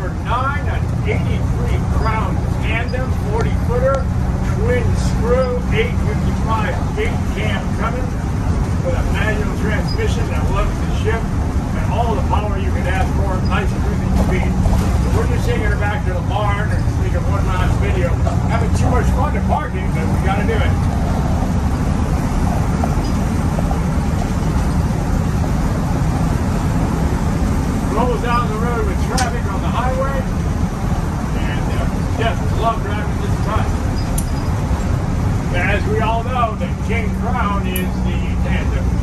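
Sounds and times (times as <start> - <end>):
diesel bus engine drone: 0.0 - 39.0.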